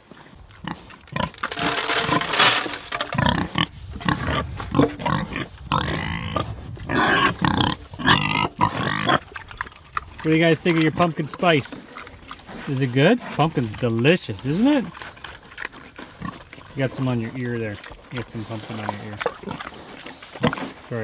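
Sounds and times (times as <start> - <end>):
pigs grunting and squealing: 0.6 - 21.0.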